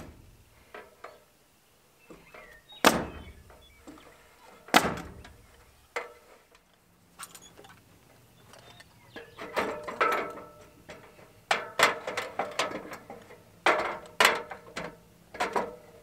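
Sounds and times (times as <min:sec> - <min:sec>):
metal ladder clanking: 0:08.6 - 0:16.0.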